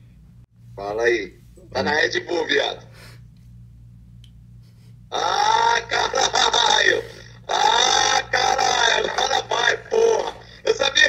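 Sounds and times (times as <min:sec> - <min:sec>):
men exclaiming and laughing: 0:05.1 - 0:11.0.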